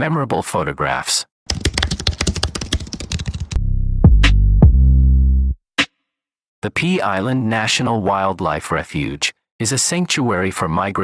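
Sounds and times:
keyboard typing clicks: 1.5s - 3.6s.

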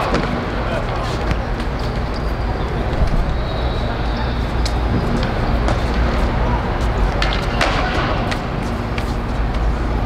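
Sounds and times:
low city rumble: 0.0s - 10.0s.

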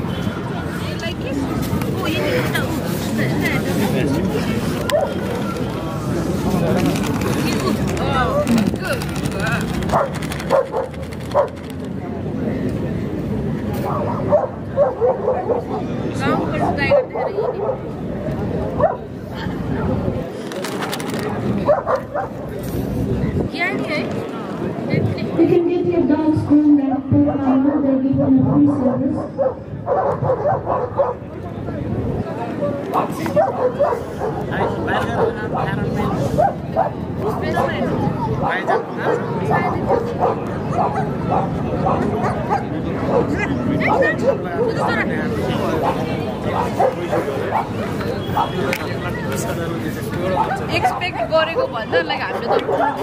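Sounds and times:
crowd chatter: 0.0s - 53.0s
dog barking: 9.9s - 11.6s, 13.8s - 15.9s, 16.6s - 17.9s, 18.8s - 19.1s, 21.7s - 22.4s, 27.4s - 31.2s, 33.0s - 37.0s, 38.4s - 43.3s, 45.8s - 47.8s, 52.3s - 53.0s.

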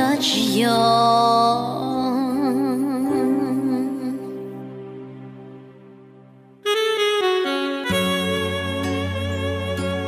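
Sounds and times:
soft instrumental backing: 0.0s - 10.0s.

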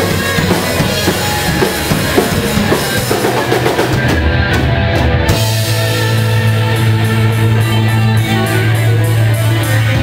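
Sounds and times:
bass guitar: 0.0s - 10.0s
distorted electric guitar: 0.0s - 10.0s
drums: 0.0s - 10.0s
live heavy metal band: 0.0s - 10.0s.

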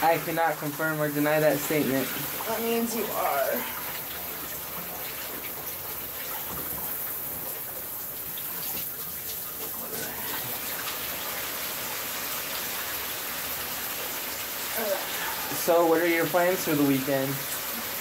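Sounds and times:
steady rushing hiss: 14.2s - 17.4s.

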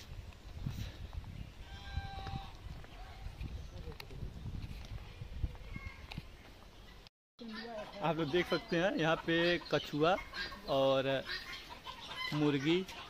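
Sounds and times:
wind rumble on microphone: 0.0s - 6.7s.

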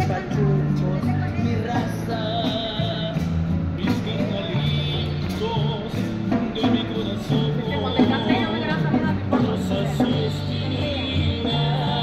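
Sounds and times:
upbeat band music: 0.0s - 12.0s.

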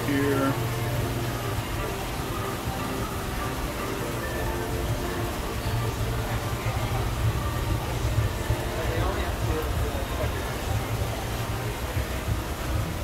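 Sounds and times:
faint background music: 0.0s - 13.0s.

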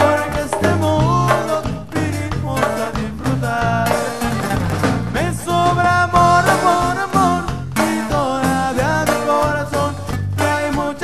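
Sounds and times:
band music with bass and lead: 0.0s - 11.0s.

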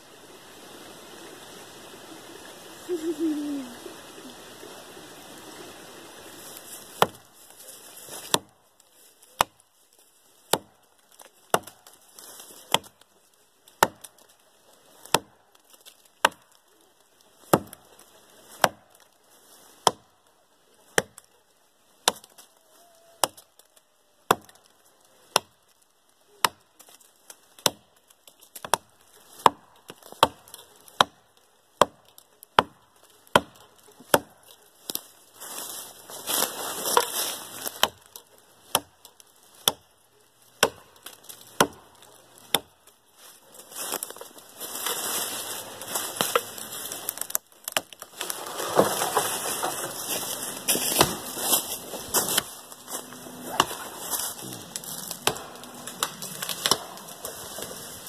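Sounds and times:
continuous rustling: 6.2s - 23.1s, 24.7s - 58.0s
hatchet chopping tree trunk: 6.9s - 7.3s, 8.1s - 8.6s, 9.2s - 9.6s, 10.5s - 12.0s, 12.6s - 13.1s, 13.7s - 14.3s, 15.0s - 16.5s, 17.4s - 19.0s, 19.8s - 20.1s, 20.9s - 21.3s, 22.0s - 22.4s, 23.2s - 23.5s, 24.2s - 24.6s, 25.2s - 25.6s, 26.4s - 26.9s, 27.6s - 35.0s, 36.8s - 39.9s, 40.6s - 42.8s, 46.1s - 57.8s.

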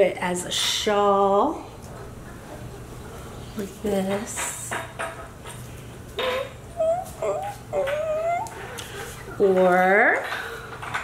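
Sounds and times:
high-pitched whimpering: 6.2s - 9.1s.

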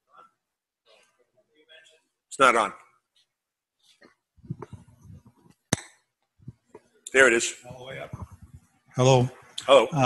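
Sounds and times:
microphone handling bumps: 4.4s - 5.6s, 8.0s - 8.6s.

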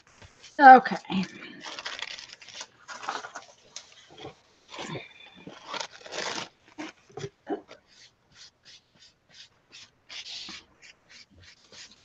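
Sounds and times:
paper rustling and crinkling: 0.1s - 4.1s, 5.4s - 12.0s.

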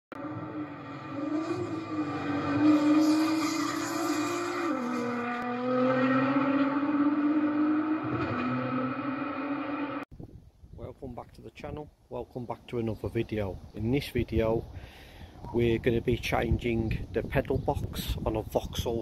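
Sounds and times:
sports car engine at high revs: 0.2s - 10.0s.

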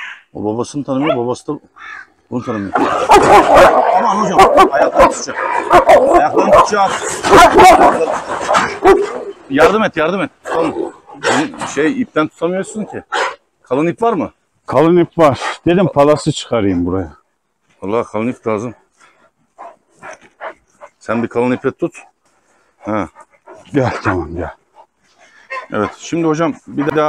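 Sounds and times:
large dogs barking aggressively: 0.9s - 1.4s, 2.4s - 14.4s, 18.2s - 27.0s.

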